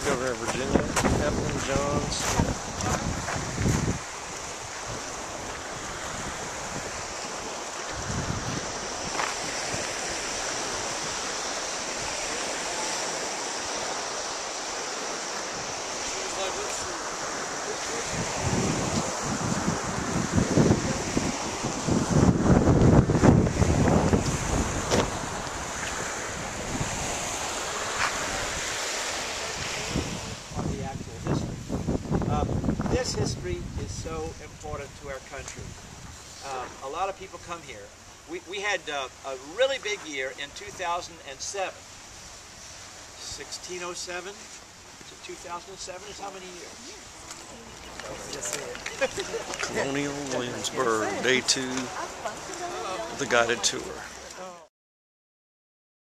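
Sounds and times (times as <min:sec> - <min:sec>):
wind blowing across microphone: 0:00.0 - 0:38.4, 0:43.8 - 0:54.4.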